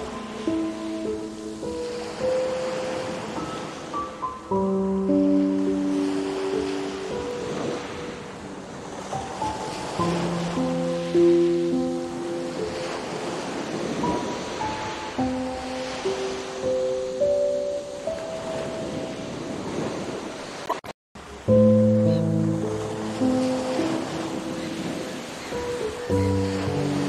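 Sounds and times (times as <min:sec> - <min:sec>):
slow relaxation music: 0:00.0 - 0:20.1, 0:21.2 - 0:27.0
ocean waves breaking: 0:00.0 - 0:27.0.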